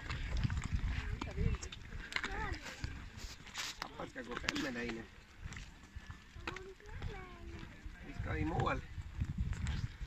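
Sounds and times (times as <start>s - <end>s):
pushchair rolling on road: 0.0s - 10.0s.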